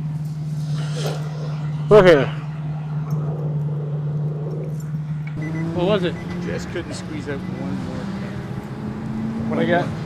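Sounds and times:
low engine hum: 0:00.0 - 0:10.0.

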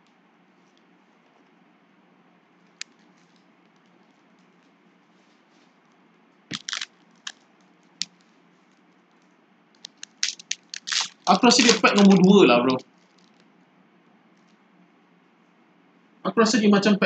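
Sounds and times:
faint room hiss: 0:00.0 - 0:17.0
foil packs crinkling: 0:06.5 - 0:07.4, 0:09.8 - 0:13.4.

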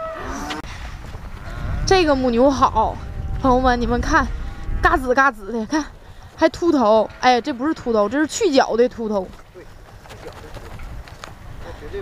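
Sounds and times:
young cow mooing: 0:00.0 - 0:00.6, 0:06.9 - 0:08.6
low rumble: 0:00.0 - 0:11.8.

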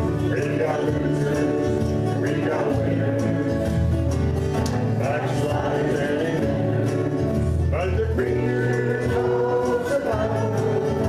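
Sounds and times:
strummed acoustic guitars: 0:00.0 - 0:11.0
voices singing together: 0:00.0 - 0:11.0.

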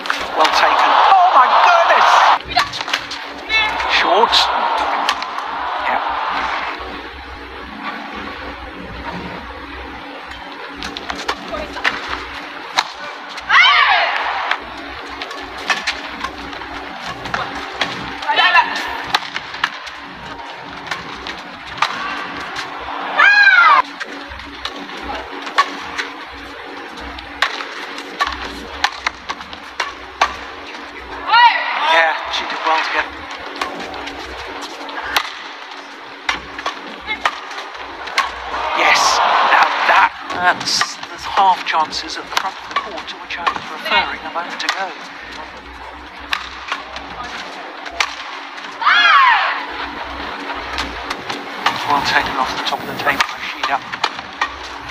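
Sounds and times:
arena crowd hum: 0:00.0 - 0:54.9
rackets hitting shuttlecock: 0:02.5 - 0:03.3, 0:04.5 - 0:06.4, 0:10.7 - 0:18.3, 0:19.0 - 0:20.1, 0:20.7 - 0:26.2, 0:26.8 - 0:30.8, 0:32.3 - 0:41.1, 0:42.2 - 0:48.8, 0:53.0 - 0:54.9.

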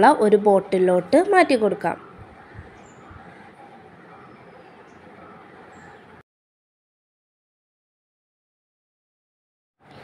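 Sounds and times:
faint background noise: 0:00.0 - 0:06.2, 0:09.8 - 0:10.0.

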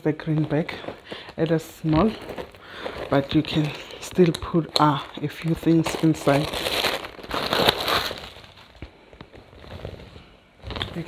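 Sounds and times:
handbag rustling and crackling: 0:00.0 - 0:11.0.

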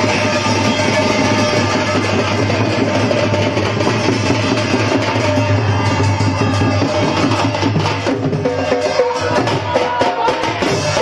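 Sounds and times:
loud live drumming and percussion: 0:00.0 - 0:11.0.

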